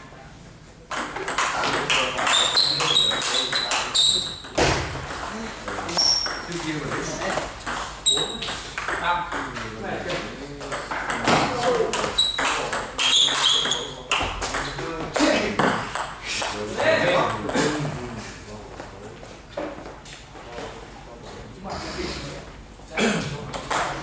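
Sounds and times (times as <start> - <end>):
people talking: 0.0 - 19.3, 20.4 - 24.0.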